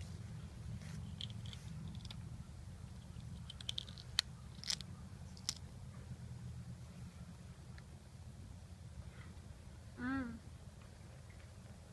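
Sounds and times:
pea pod snapping open: 3.5s - 5.6s.

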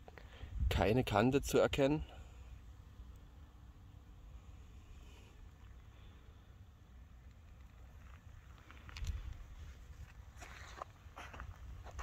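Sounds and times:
wind rumble on microphone: 0.4s - 1.2s
footsteps through plants: 8.5s - 12.0s.

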